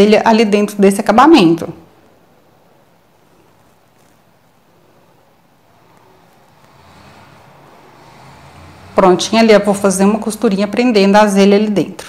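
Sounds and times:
cloth rustling: 0:03.1 - 0:08.7.

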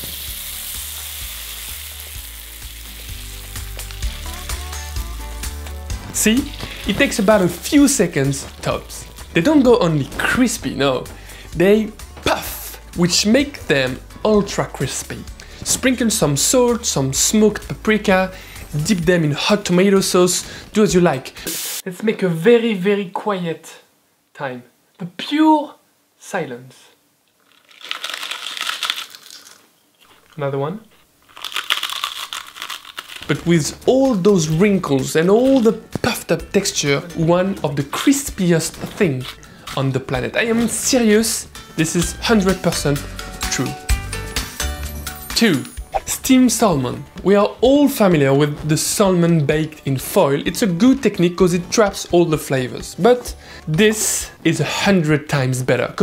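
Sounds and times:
rice paper sizzling in oil: 0:00.0 - 0:10.9, 0:21.4 - 0:21.8
crunching of a crisp: 0:27.4 - 0:30.5, 0:31.2 - 0:34.2.

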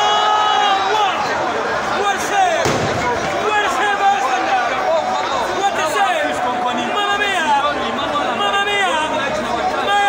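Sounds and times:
crowd babble of voices: 0:00.0 - 0:10.0.

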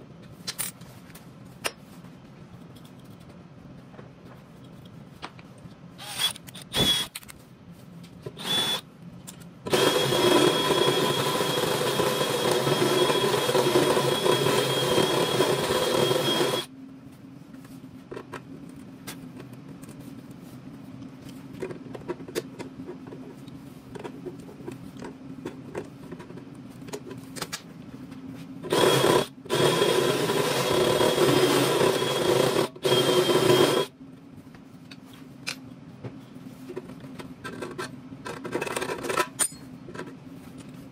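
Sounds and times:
cordless drill motor whining: 0:06.0 - 0:07.1, 0:08.4 - 0:08.8, 0:09.7 - 0:16.7, 0:28.7 - 0:33.9.

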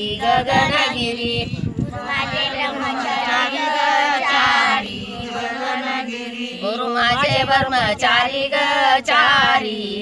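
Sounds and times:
women and girl singing together: 0:00.0 - 0:10.0.

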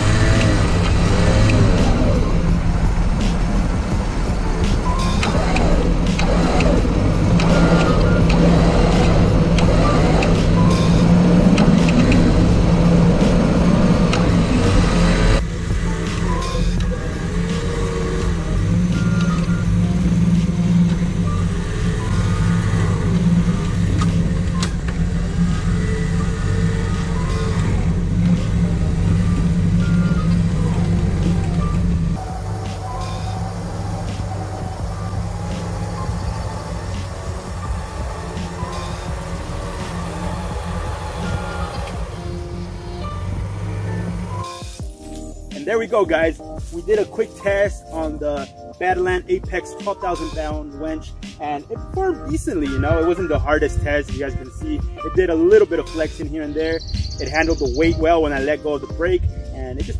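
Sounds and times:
vehicle engine running: 0:00.0 - 0:48.3
background music: 0:00.0 - 0:59.9
electric winch pulling: 0:04.0 - 0:15.4, 0:31.7 - 0:44.5.

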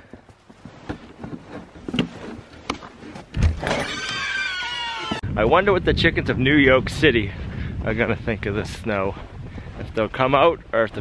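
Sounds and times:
creaking door hinge: 0:03.4 - 0:05.2.

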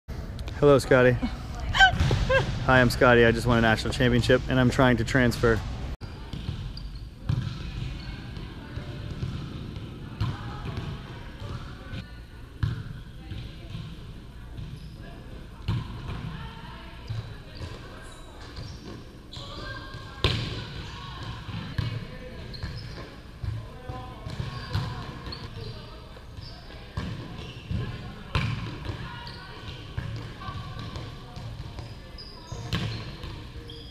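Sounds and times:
murmur of players' voices: 0:00.1 - 0:33.9
volleyballs struck and bouncing: 0:26.8 - 0:31.9.

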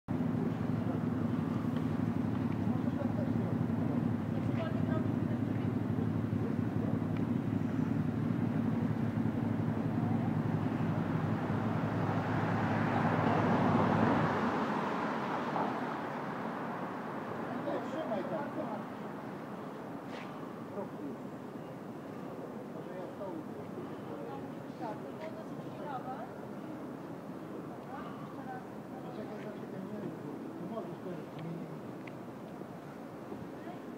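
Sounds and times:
street noise: 0:00.0 - 0:33.9
vehicle engine droning: 0:00.1 - 0:18.4
passing traffic: 0:00.1 - 0:33.9.

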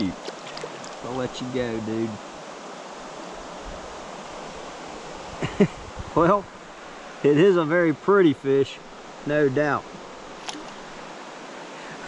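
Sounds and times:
rocky stream flowing: 0:00.0 - 0:05.4, 0:06.2 - 0:12.0.

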